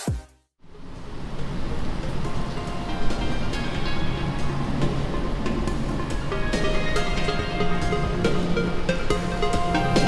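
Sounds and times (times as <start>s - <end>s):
background music: 2.2s - 10.0s.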